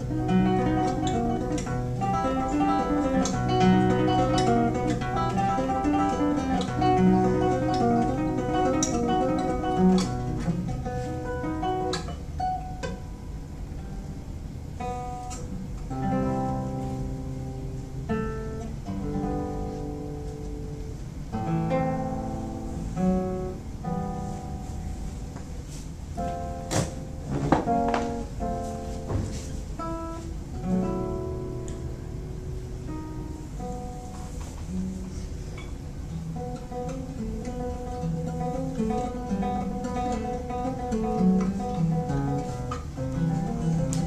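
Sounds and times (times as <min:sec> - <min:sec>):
fingerstyle classical guitar: 0:00.0 - 0:44.0.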